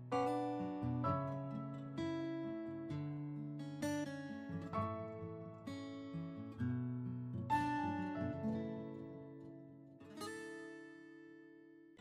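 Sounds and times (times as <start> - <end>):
acoustic guitar chord strummed: 0.0 - 12.0.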